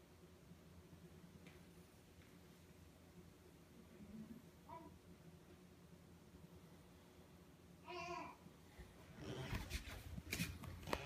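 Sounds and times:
rustling handling noise: 9.3 - 11.0.

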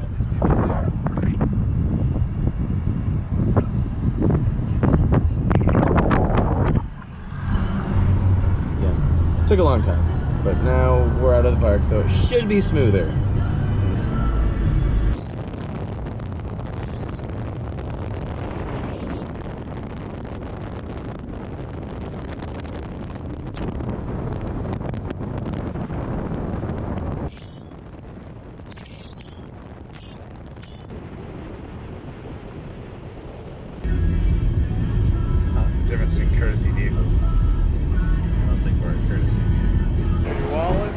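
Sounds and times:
wind buffeting microphone: 0.0 - 40.9
wind rush and road noise: 0.0 - 40.9
music playing in car cabin: 3.6 - 15.2, 33.8 - 40.9.

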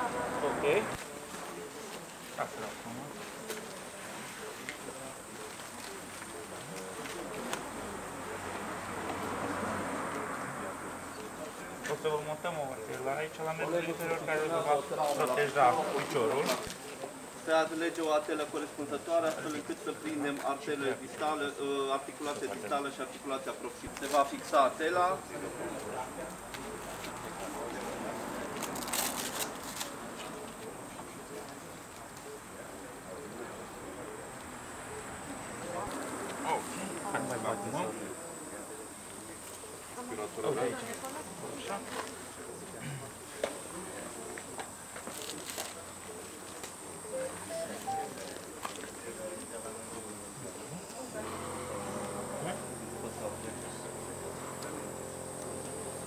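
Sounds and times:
faint indistinct voices: 0.0 - 56.0.

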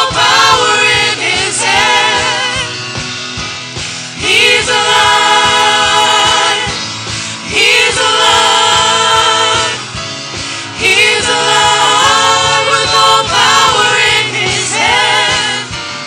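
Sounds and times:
choir singing in harmony: 0.0 - 16.0
drums: 0.0 - 16.0
guitar: 0.0 - 16.0
keyboard: 0.0 - 16.0.

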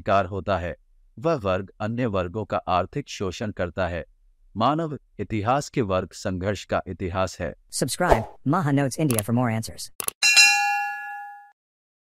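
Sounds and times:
bright bell ding: 10.2 - 11.6.

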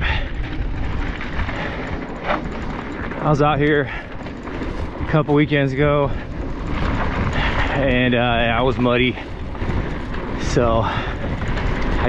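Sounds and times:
bike tyres rolling on dirt: 0.0 - 12.0
wind over microphone: 0.0 - 12.0.

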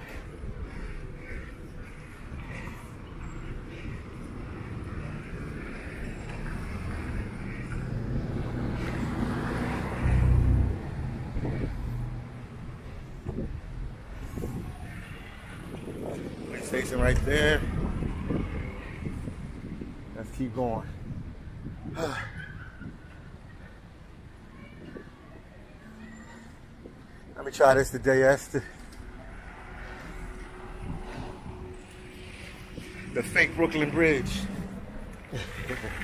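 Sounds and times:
wind rumble on microphone: 0.0 - 25.5, 29.0 - 36.0
traffic: 0.0 - 36.0.

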